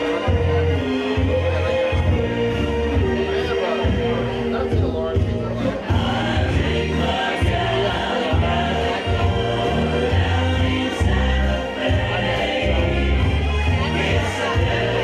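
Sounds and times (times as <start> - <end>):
band playing live: 0.0 - 15.0
steady bass line: 0.0 - 15.0
voices singing: 0.0 - 15.0.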